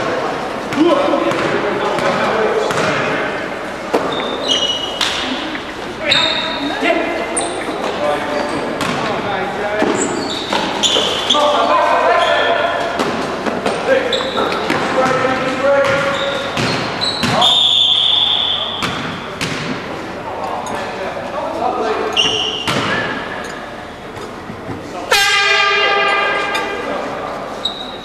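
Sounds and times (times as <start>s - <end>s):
sneakers squeaking on floor: 3.9s - 19.9s, 21.9s - 25.0s, 27.5s - 28.0s
basketball bouncing on wooden court: 14.6s - 17.5s.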